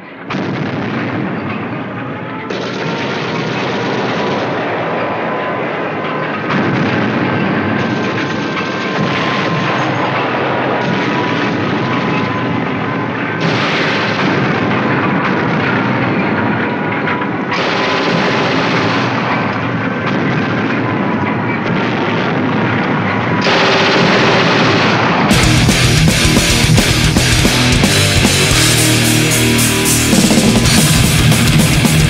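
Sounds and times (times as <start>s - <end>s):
thrash metal music: 0.0s - 32.0s.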